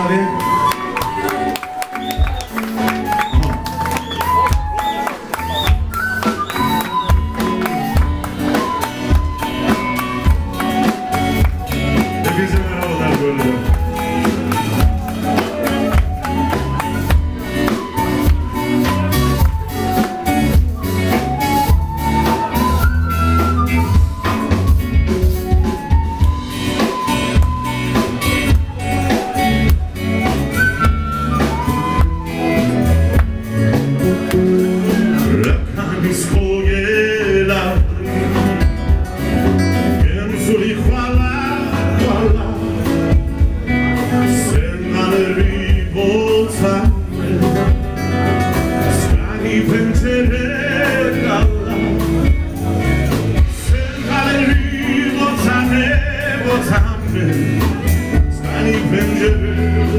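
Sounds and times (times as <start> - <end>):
folk band melody with sliding notes: 0.0 - 59.9
deep drum beat: 2.2 - 4.8, 5.5 - 59.9.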